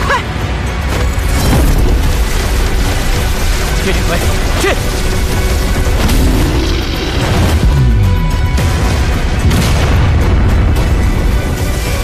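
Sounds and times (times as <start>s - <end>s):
dramatic music: 0.0s - 12.0s
deep booming energy attack: 5.1s - 11.0s.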